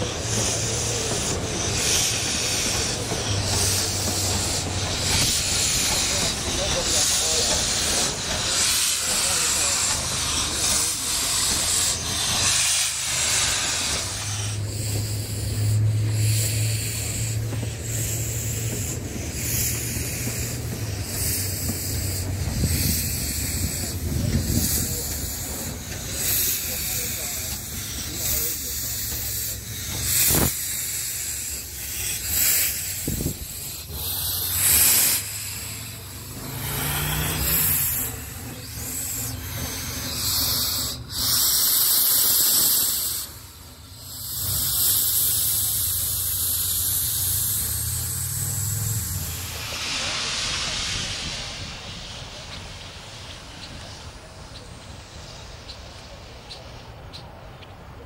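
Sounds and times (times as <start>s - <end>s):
steam locomotive hissing: 0.0s - 58.0s.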